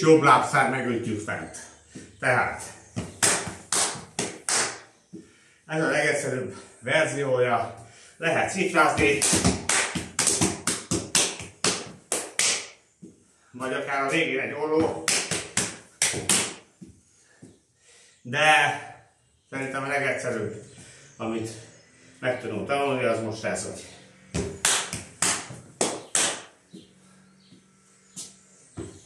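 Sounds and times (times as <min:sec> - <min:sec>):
hands slapping thighs and shins: 0:03.0 - 0:05.3, 0:09.0 - 0:13.2, 0:14.8 - 0:17.6, 0:24.4 - 0:26.9.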